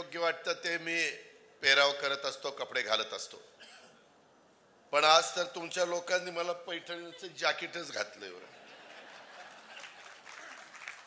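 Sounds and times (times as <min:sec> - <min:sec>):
crowd applauding: 0:08.9 - 0:11.0.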